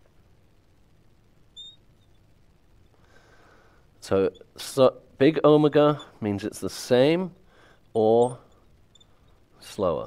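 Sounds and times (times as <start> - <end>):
marker squeaking on glass: 1.6 - 2.2, 4.0 - 4.8, 5.7 - 6.2, 8.0 - 9.5.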